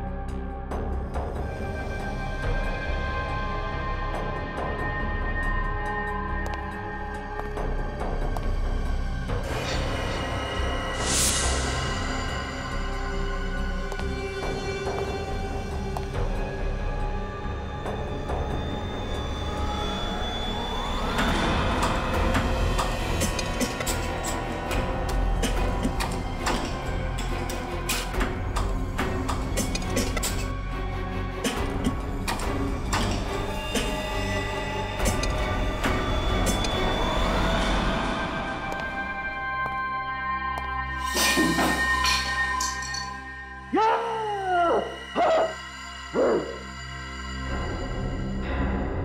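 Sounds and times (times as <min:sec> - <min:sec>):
low music drone: 0:00.0 - 0:49.0
dog howling: 0:43.7 - 0:46.7
dog barking: 0:45.1 - 0:46.6.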